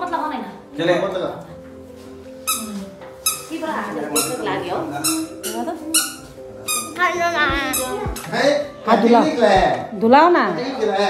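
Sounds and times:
faint electronic tune: 3.4 - 9.9.

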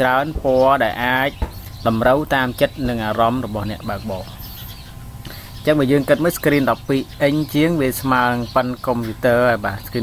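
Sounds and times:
person talking: 0.0 - 4.5, 5.3 - 10.0.

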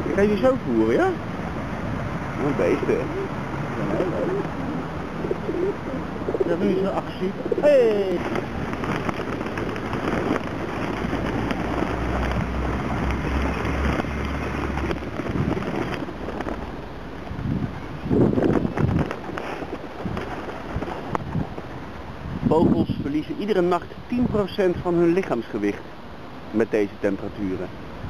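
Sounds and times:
wind rumbling on microphone: 0.0 - 26.6
pigeons flapping wings: 7.4 - 16.7.

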